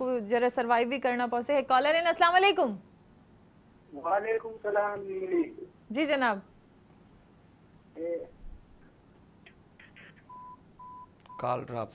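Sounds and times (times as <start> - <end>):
faint background hiss: 0.0 - 11.9
telephone line beeps: 10.3 - 11.5.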